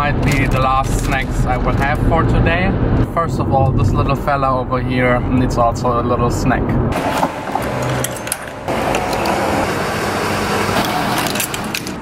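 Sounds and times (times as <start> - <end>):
traffic noise: 0.0 - 12.0.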